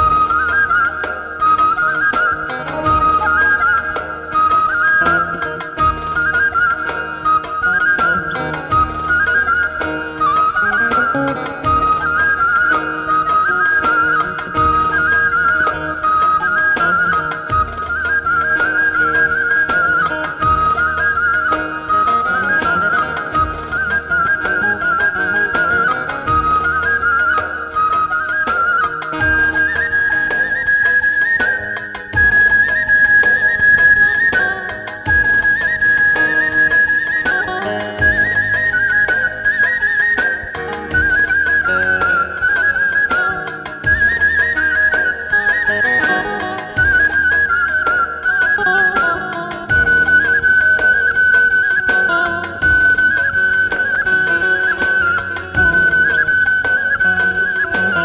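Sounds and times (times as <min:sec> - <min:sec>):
drums: 0:00.0 - 0:58.0
wooden flute melody with trills: 0:00.0 - 0:58.0.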